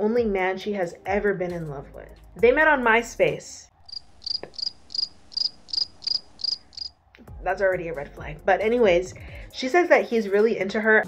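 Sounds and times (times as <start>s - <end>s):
crickets chirping: 3.8s - 7.0s.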